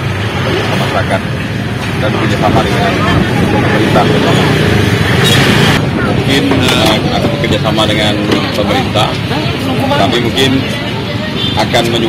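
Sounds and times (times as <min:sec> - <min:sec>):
man speaking: 0:02.0 - 0:04.7, 0:06.2 - 0:10.8, 0:11.5 - 0:12.0.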